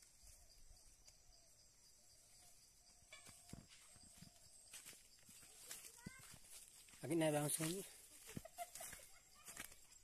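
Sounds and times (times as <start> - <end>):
footsteps rustling through plants: 2.4 - 10.0.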